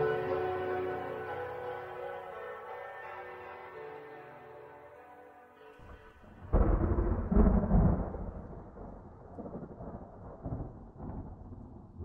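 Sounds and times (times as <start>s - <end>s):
thunder rumbling: 5.9s - 12.0s.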